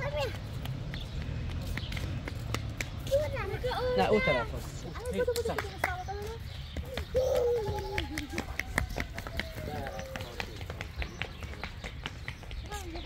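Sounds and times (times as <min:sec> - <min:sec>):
running footsteps on stone: 0:00.0 - 0:13.0.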